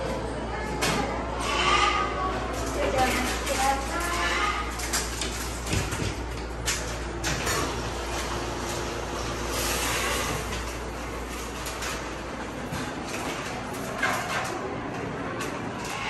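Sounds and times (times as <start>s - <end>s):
low machine hum: 0.0s - 16.0s.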